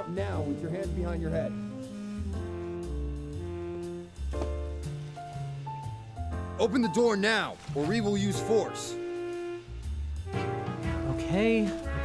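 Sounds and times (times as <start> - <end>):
jazzy background music: 0.0 - 12.0.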